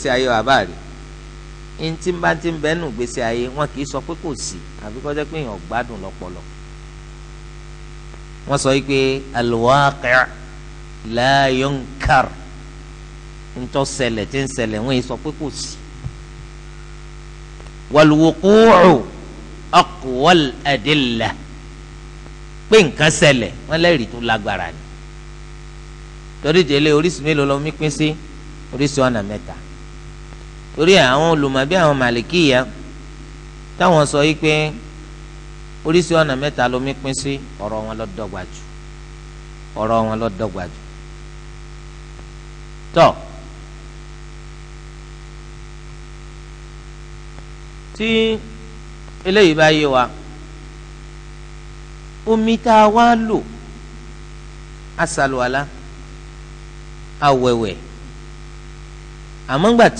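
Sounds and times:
man reading aloud: 0.0 - 0.9, 1.8 - 6.4, 8.4 - 10.4, 11.0 - 12.5, 13.6 - 15.8, 17.9 - 21.5, 22.7 - 24.8, 26.4 - 29.7, 30.8 - 32.9, 33.8 - 34.9, 35.9 - 38.7, 39.8 - 40.8, 42.9 - 43.4, 48.0 - 48.6, 49.2 - 50.3, 52.3 - 53.6, 55.0 - 55.7, 57.2 - 57.8, 59.5 - 59.9
electrical mains hum: 0.0 - 59.9
faint hiss: 0.0 - 59.9.

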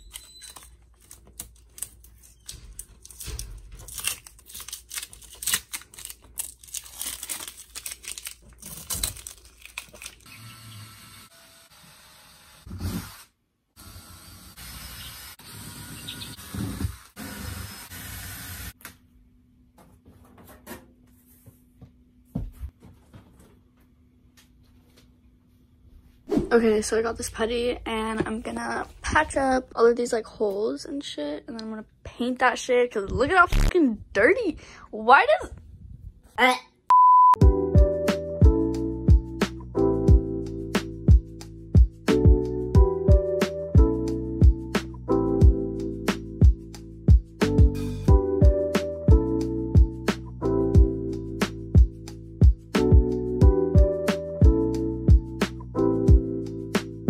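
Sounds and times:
stickers being peeled: 0.0 - 10.3
music with thudding beat: 40.8 - 42.5, 45.4 - 53.9.

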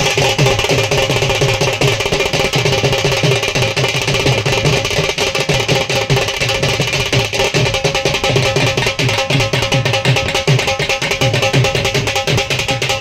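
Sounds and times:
fast drum beat: 0.0 - 13.0.

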